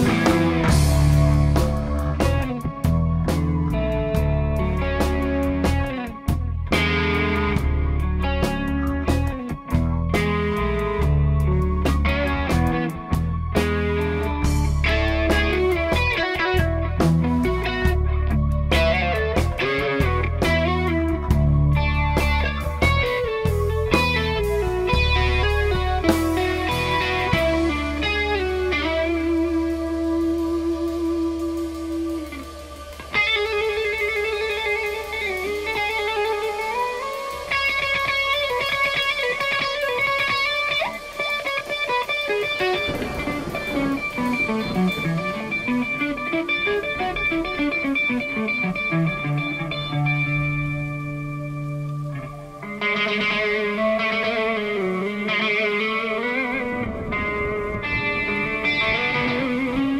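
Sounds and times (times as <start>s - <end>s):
bass guitar: 0.0s - 59.9s
drums: 0.0s - 59.9s
electric guitar lead: 0.0s - 59.9s
synth: 0.0s - 59.9s.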